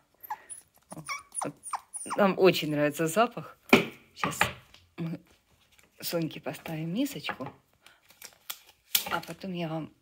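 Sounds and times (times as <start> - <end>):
puppy whimpering: 0.1 - 2.4.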